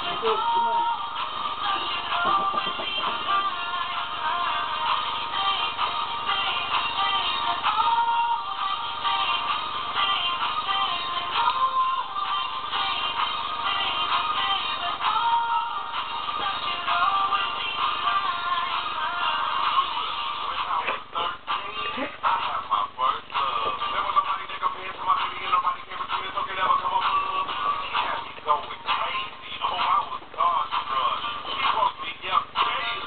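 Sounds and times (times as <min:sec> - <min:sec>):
pop song with vocals: 0:00.0 - 0:33.0
man singing along: 0:20.6 - 0:33.0.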